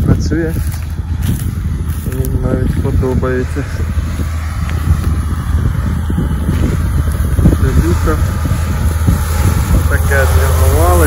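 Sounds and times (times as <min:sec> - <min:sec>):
tractor diesel engine droning: 0:00.0 - 0:11.0.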